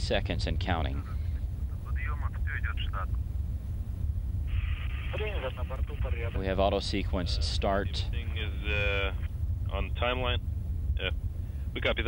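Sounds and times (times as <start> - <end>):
low outdoor rumble: 0.0 - 12.0
radio hiss: 0.9 - 3.2, 4.5 - 10.4, 11.7 - 12.0.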